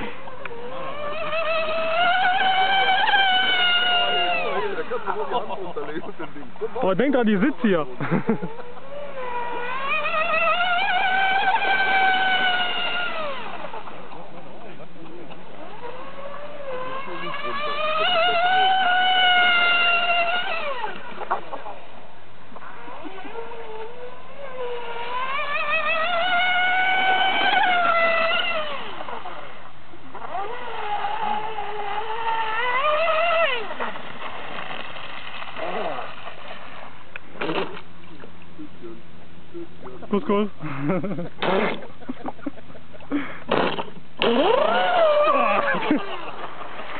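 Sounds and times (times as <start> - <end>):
model speedboat motor whining: 0.0 - 46.9.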